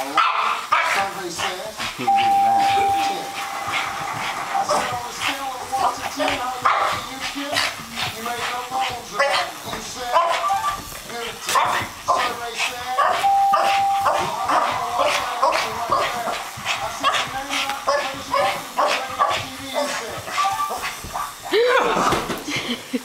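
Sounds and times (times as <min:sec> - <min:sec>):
dog barking rapidly: 0:00.0 - 0:01.1, 0:06.2 - 0:07.1, 0:09.1 - 0:10.7, 0:11.4 - 0:21.4.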